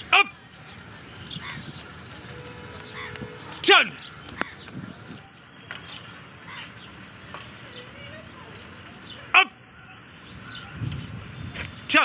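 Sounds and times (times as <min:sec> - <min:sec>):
man shouting drill call: 0:00.1 - 0:00.4, 0:09.4 - 0:09.6.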